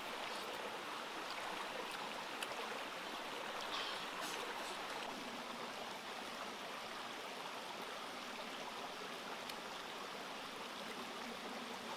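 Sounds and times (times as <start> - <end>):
stream water rushing: 0.0 - 11.9.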